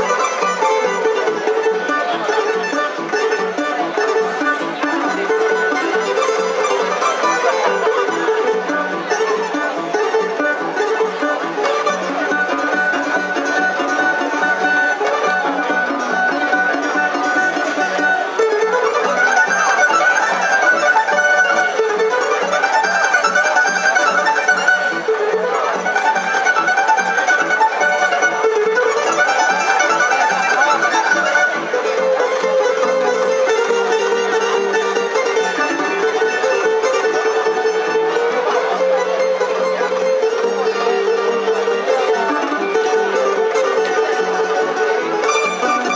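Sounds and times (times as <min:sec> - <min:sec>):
plucked bass: 0:00.0 - 0:45.9
tamburica orchestra playing: 0:00.0 - 0:45.9.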